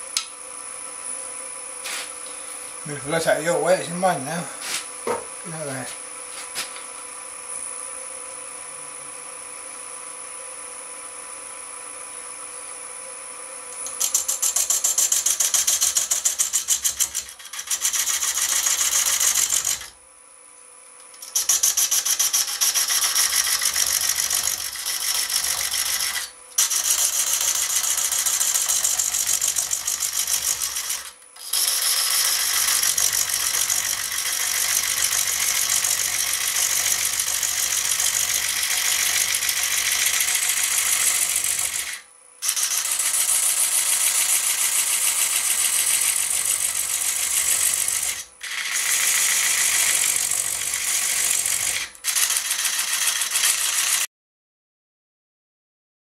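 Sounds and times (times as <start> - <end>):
lathe tool cutting wood: 13.8 - 20.0, 21.2 - 54.1.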